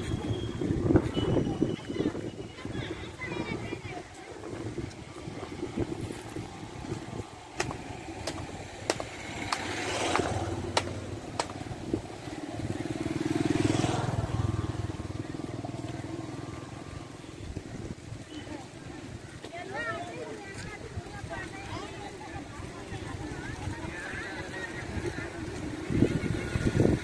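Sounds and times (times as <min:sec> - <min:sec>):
motor vehicle engine: 0:03.4 - 0:17.3
sharp clicks: 0:07.6 - 0:11.6.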